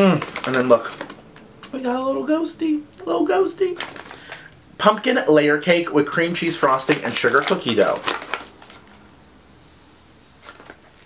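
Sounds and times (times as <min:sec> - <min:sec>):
paper bag crinkling: 0:00.0 - 0:01.4, 0:03.6 - 0:04.5, 0:06.5 - 0:09.1, 0:10.4 - 0:11.0.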